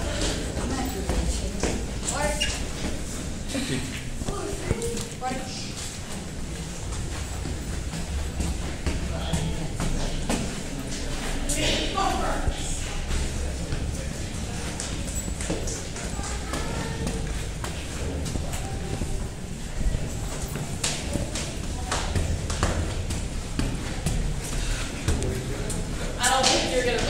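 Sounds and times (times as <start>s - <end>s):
footsteps climbing stairs: 0.0s - 27.0s
indistinct voices: 0.0s - 27.0s.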